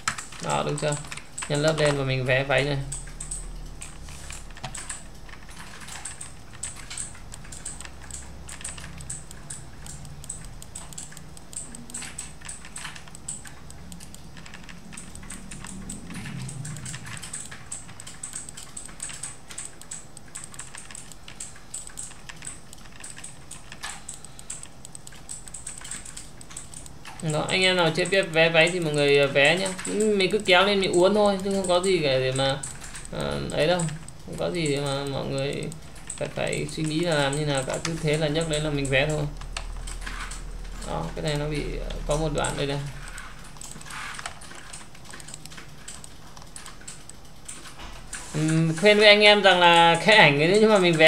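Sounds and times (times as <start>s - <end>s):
computer keyboard clicking: 0.0s - 51.0s
mouse clicks: 2.8s - 32.0s.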